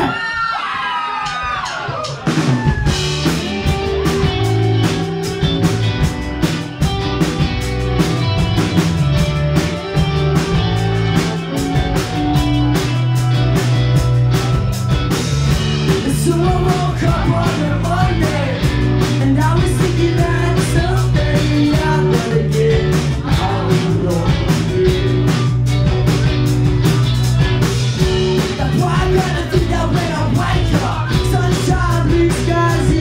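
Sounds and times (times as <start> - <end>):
live rock band playing: 1.2 - 33.0.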